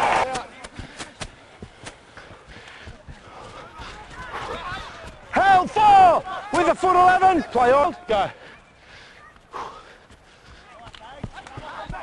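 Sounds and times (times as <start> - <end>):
crowd noise: 0.0 - 12.0
players shouting: 3.1 - 8.5, 10.7 - 12.0.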